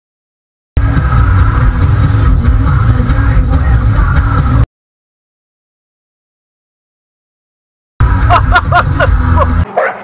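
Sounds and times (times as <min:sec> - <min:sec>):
car engine and road drone: 0:00.8 - 0:04.6.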